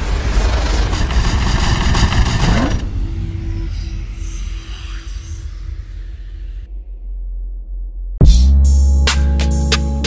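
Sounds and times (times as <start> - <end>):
low rumble: 0.0 - 8.3.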